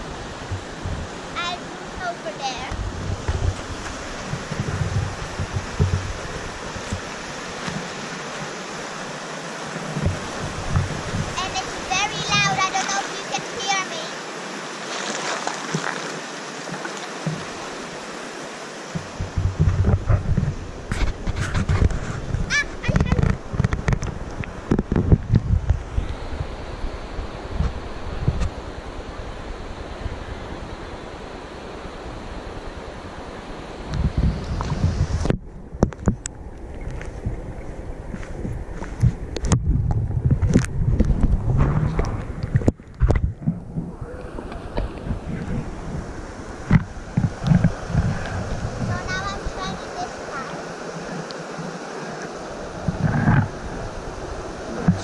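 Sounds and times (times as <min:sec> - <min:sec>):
wind buffeting microphone: 0:00.0 - 0:13.8, 0:18.9 - 0:55.0
river water splashing: 0:00.0 - 0:39.6, 0:40.4 - 0:55.0.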